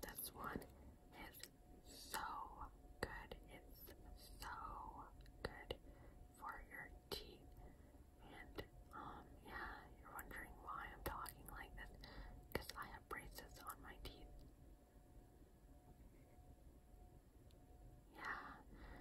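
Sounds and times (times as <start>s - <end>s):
woman whispering: 0.0s - 7.6s, 8.2s - 14.4s, 18.1s - 18.7s.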